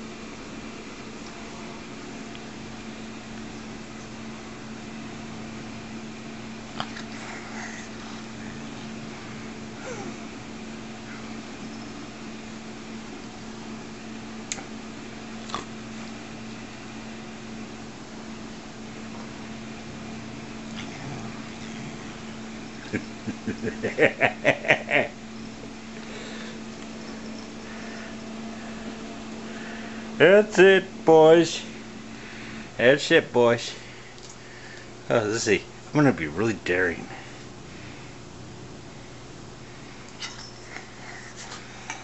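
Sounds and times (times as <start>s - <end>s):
low mechanical hum: 0.0s - 42.0s.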